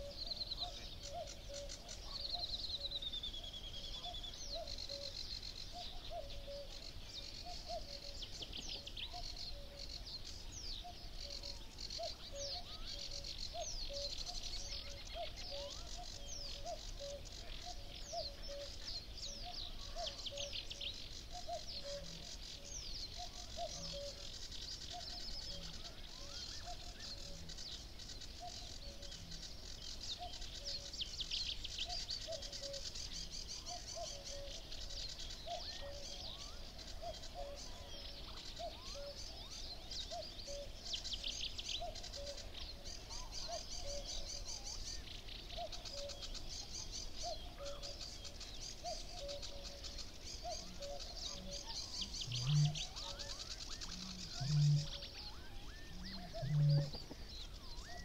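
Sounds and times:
cuckoo calling: 0.0 - 10.0, 10.8 - 27.6, 30.1 - 58.0
songbirds singing: 0.0 - 58.0.

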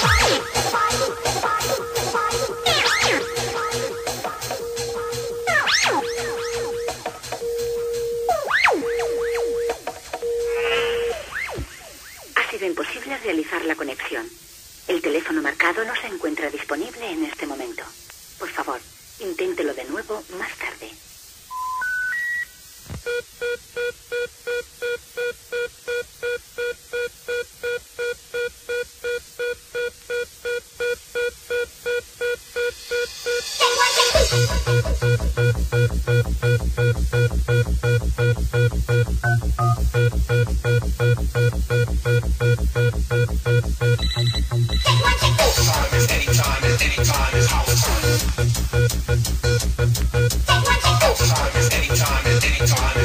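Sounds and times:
dance music break: 0.0 - 12.4, 33.1 - 53.0
telephone beeps: 6.5 - 11.2, 21.5 - 22.5, 36.8 - 45.0
busy signal pulse: 6.6 - 11.2.

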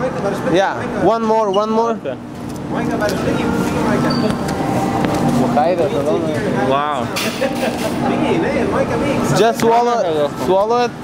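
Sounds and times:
room rumble: 0.0 - 9.6
indistinct background voices: 2.4 - 10.4.

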